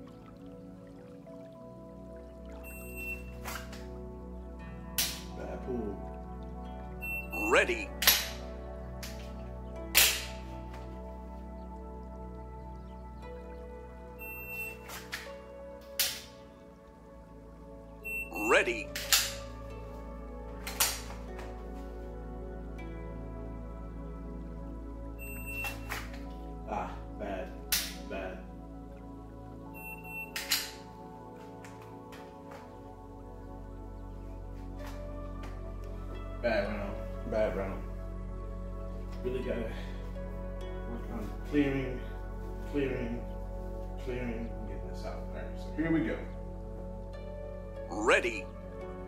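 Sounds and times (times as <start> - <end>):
background music: 0.0 - 49.0
faint steady tones: 0.0 - 49.0
shot timer beep: 2.6 - 3.3, 7.0 - 7.5, 14.2 - 14.8, 18.0 - 18.4, 25.2 - 25.9, 29.8 - 30.5
pistol dry-fire clicks: 30.4 - 30.8.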